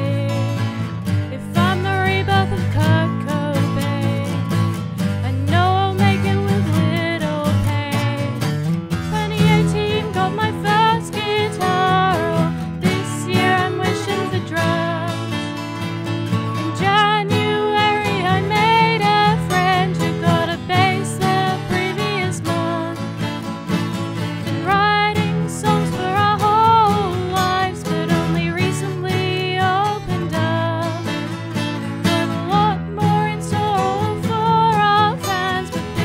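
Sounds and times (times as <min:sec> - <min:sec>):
person singing with vibrato: 0:00.0 - 0:00.7, 0:01.3 - 0:04.5, 0:09.1 - 0:15.5, 0:16.6 - 0:23.2, 0:24.6 - 0:31.2, 0:32.0 - 0:36.0
bass: 0:00.0 - 0:36.0
guitars: 0:00.0 - 0:36.0.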